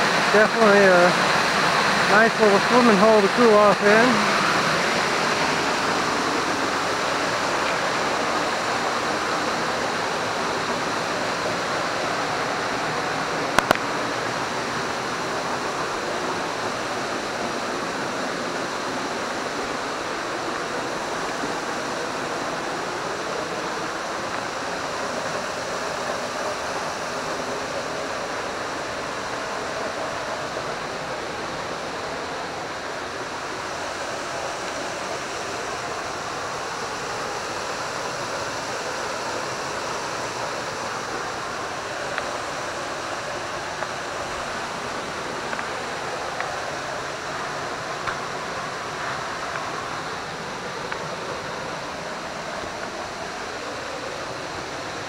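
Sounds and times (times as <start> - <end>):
waterfall pouring into pool: 0.0 - 55.0.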